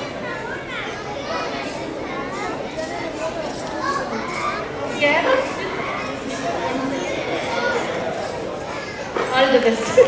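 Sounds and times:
babble of voices: 0:00.0 - 0:10.0.

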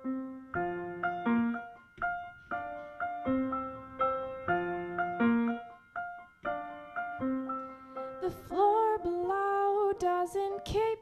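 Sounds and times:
solo piano: 0:00.0 - 0:11.0.

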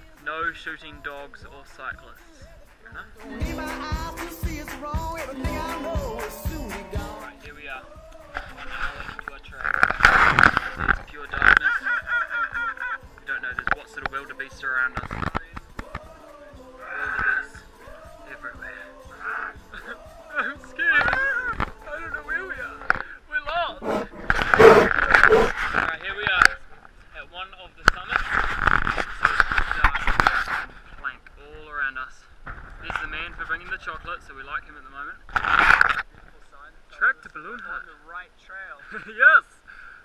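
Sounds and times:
people's voices: 0:00.0 - 0:26.8.

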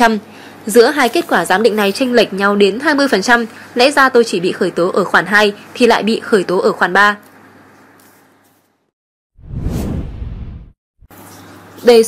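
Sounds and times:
whoosh with deep rumble: 0:09.4 - 0:10.8.

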